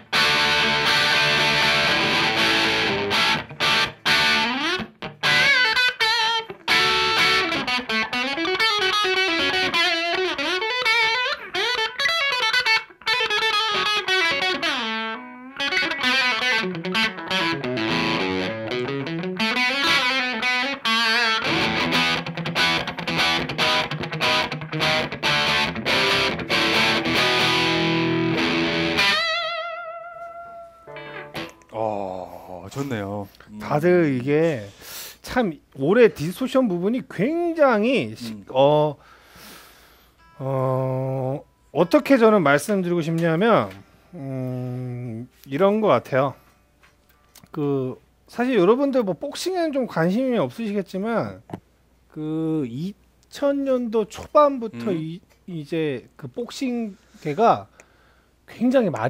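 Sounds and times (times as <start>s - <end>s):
distorted electric guitar: 0.0s - 31.8s.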